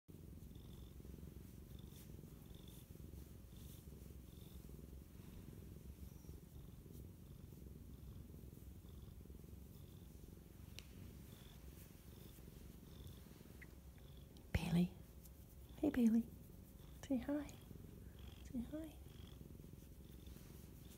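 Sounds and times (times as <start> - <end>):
cat purring: 0.1 - 20.9.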